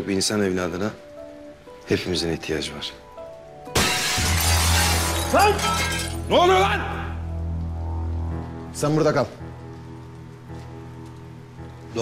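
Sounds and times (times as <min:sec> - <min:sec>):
soft background music: 0:00.0 - 0:12.0
glass shattering: 0:03.7 - 0:06.5.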